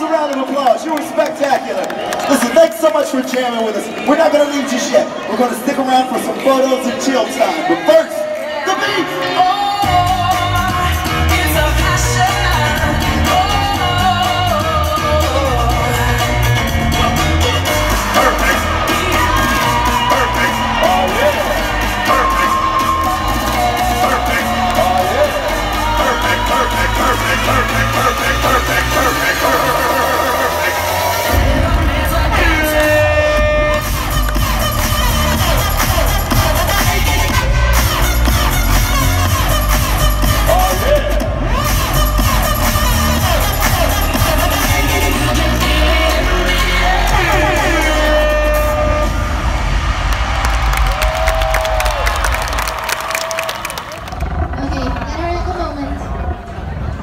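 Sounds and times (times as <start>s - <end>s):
loud dance music with heavy bass: 4.6s - 57.0s.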